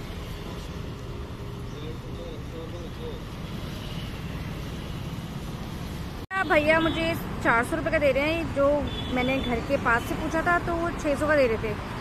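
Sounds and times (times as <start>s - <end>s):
passing road traffic rumble: 0.0s - 12.0s.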